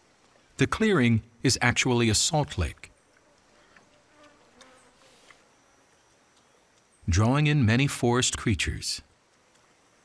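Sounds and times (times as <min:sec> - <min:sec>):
insects buzzing: 0:00.0 - 0:10.0
faint soft ticks: 0:03.1 - 0:05.4, 0:06.3 - 0:06.9, 0:09.3 - 0:09.8.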